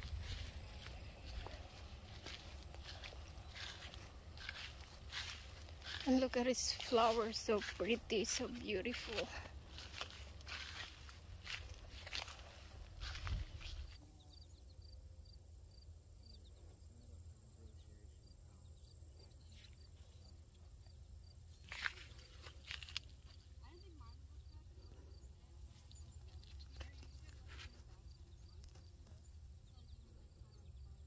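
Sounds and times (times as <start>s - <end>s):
footsteps through plants: 0.0s - 14.0s, 21.6s - 23.4s, 25.7s - 29.2s.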